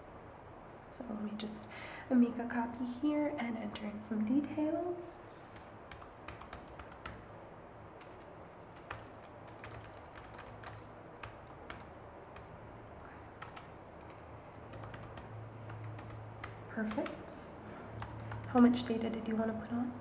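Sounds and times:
typing on laptop keyboard: 5.5s - 7.3s, 8.0s - 18.8s.

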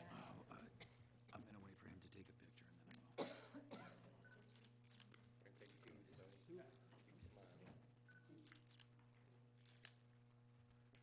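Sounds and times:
person coughing: 3.2s - 4.0s.

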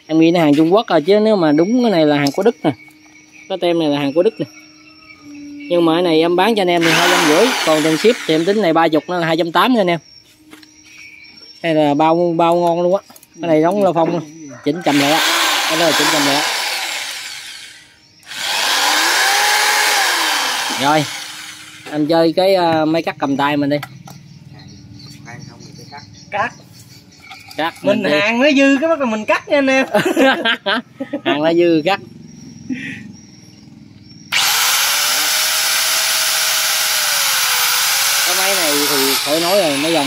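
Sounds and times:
electric drill motor whine: 5.2s - 9.0s, 14.8s - 22.1s, 34.3s - 40.0s.

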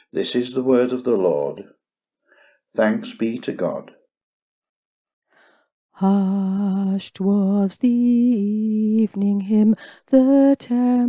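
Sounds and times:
person breathing in: 2.2s - 2.6s, 5.3s - 5.7s.

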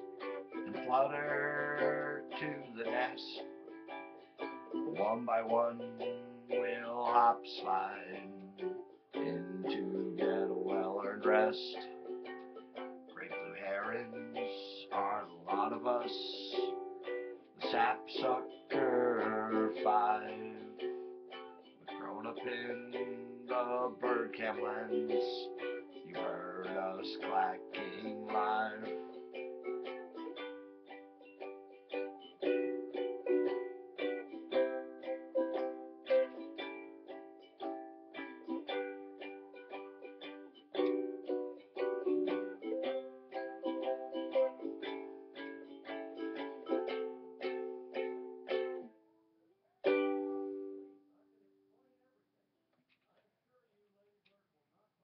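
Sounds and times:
solo ukulele playing: 0.0s - 49.1s, 49.7s - 51.1s.

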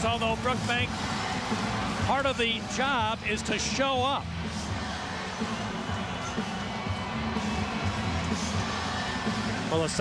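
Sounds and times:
arena crowd noise: 0.0s - 10.0s
music over loudspeakers: 0.0s - 10.0s.

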